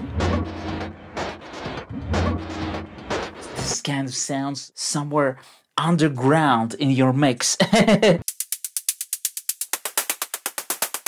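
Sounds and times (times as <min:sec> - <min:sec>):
deep bass hit: 0:00.0 - 0:03.7
techno drum loop: 0:00.0 - 0:03.8, 0:08.2 - 0:11.0.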